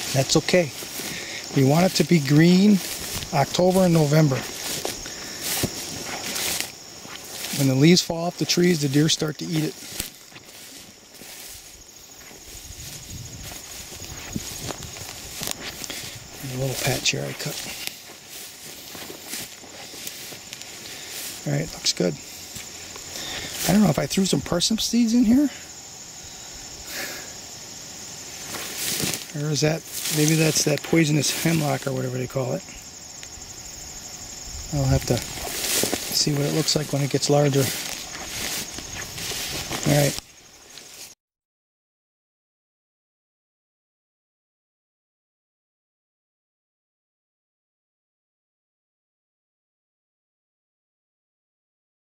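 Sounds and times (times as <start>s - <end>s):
footsteps through dry grass: 0.0s - 41.2s
high insect drone: 0.0s - 41.2s.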